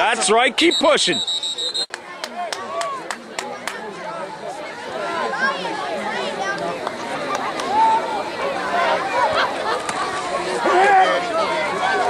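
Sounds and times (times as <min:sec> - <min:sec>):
people shouting and chattering: 0:00.0 - 0:12.0
referee whistle: 0:00.6 - 0:02.0.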